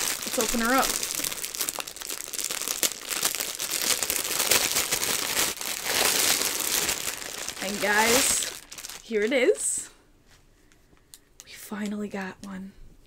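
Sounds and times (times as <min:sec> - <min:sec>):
plastic bag crinkling: 0:00.0 - 0:09.8.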